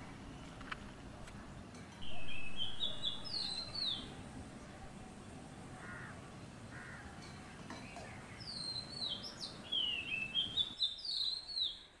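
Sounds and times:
faint background hiss: 0.0 - 12.0
bird singing whistled notes: 2.0 - 4.1, 8.4 - 12.0.

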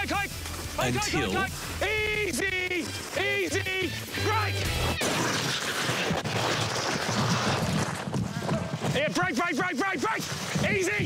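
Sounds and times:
sled runners scraping on snow: 0.2 - 11.0.

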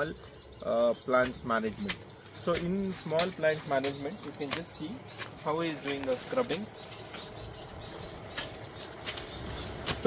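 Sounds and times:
hand scraper scraping through soil: 1.2 - 7.2, 8.2 - 10.0.

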